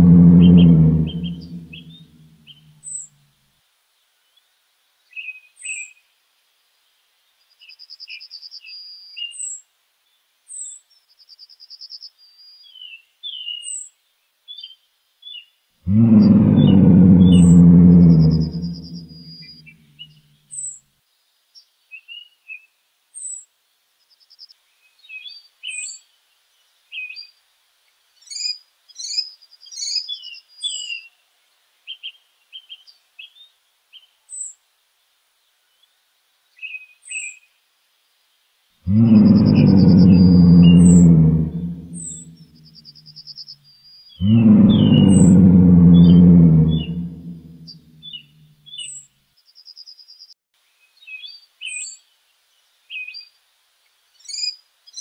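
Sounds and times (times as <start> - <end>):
birds calling: 0.0 - 3.0, 15.9 - 19.8, 38.9 - 42.5, 44.2 - 49.0
small birds chirping and trilling: 0.0 - 3.1, 7.3 - 27.4, 28.2 - 31.2, 31.8 - 34.6, 35.6 - 37.6, 38.9 - 53.4, 54.1 - 55.0.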